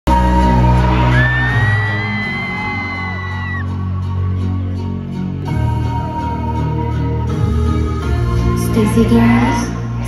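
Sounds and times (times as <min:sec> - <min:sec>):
loud synth music: 0:00.1 - 0:10.0
crowd cheering: 0:00.2 - 0:05.4
long high scream: 0:01.1 - 0:03.7.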